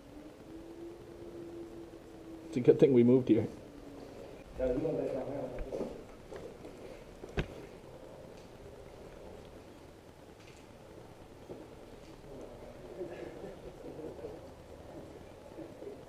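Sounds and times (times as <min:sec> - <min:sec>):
faint indistinct sounds: 0:00.0 - 0:16.0.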